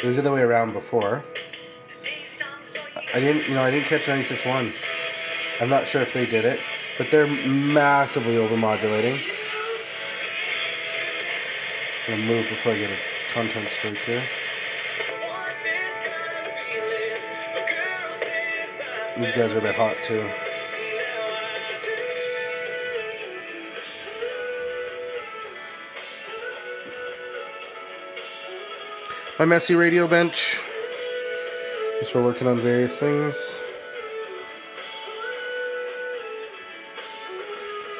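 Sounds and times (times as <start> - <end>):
thin hissy radio broadcast: 0.9 - 27.0.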